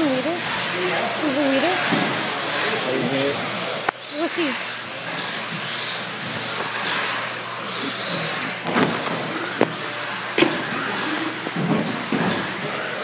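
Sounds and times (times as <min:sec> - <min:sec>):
rc car motors whining: 0:00.0 - 0:13.0.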